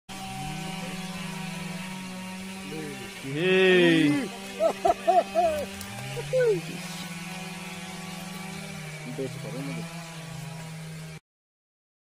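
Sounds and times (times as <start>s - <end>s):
low buzzing drone: 0.1s - 11.2s
short voice exclamation: 3.3s - 6.9s.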